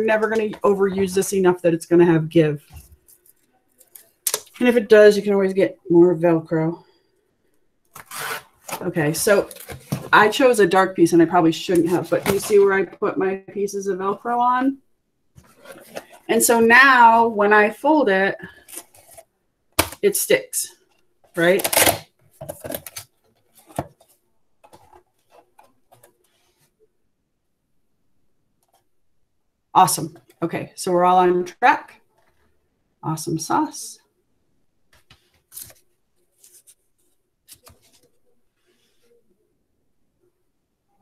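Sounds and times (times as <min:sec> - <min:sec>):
person speaking: 0:00.0 - 0:02.8, 0:08.7 - 0:14.8, 0:15.6 - 0:18.6.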